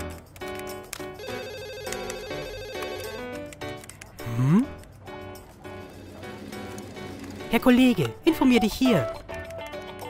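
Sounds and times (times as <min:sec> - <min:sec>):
light background music: 0:00.0 - 0:10.0
telephone ringing: 0:01.2 - 0:03.4.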